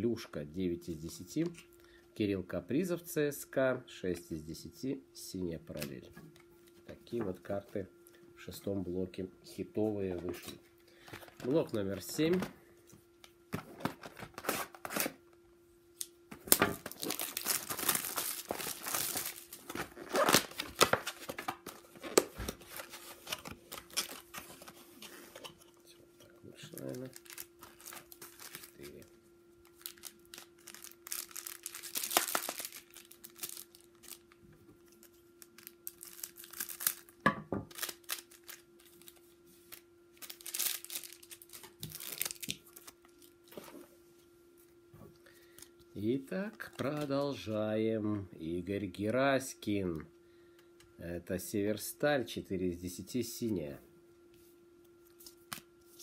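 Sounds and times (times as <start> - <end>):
plastic wrappers crinkling: 16.4 - 43.7, 46.4 - 47.4
scissors cutting plastic wrap: 16.5 - 25.5, 29.8 - 34.3, 35.6 - 37.1, 37.7 - 39.2, 40.2 - 42.9.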